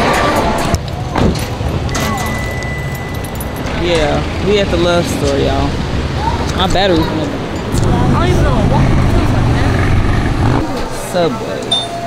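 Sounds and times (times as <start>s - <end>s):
car engine and tyres rumbling: 0.6s - 11.4s
thin high tone: 1.9s - 4.0s.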